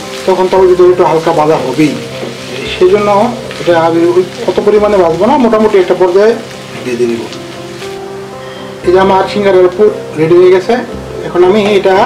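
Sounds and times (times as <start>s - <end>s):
potato frying in a pan: 0.0s - 12.0s.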